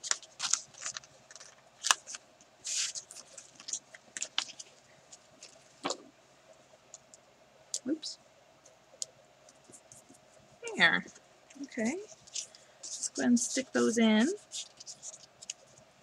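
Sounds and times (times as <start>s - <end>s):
paper sticker sheets rustling: 0.0s - 6.0s, 11.5s - 15.8s.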